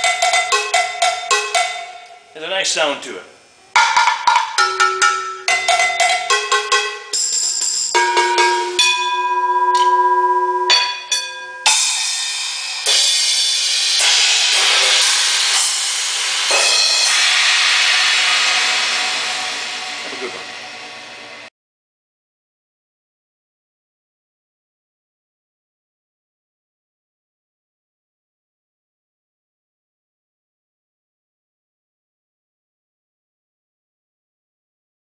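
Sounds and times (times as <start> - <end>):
crashing cymbals: 3.7 - 21.5
drum hits with sticks: 3.8 - 10.0, 10.7 - 20.6.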